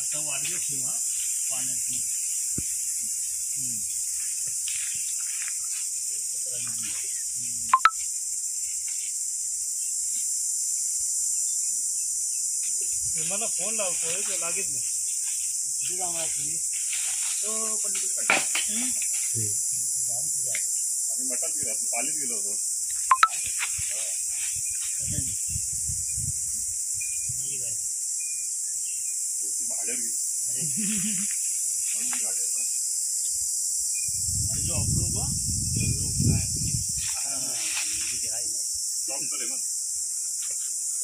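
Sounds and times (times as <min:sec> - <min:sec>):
high-pitched insect drone: 0:00.0 - 0:41.0.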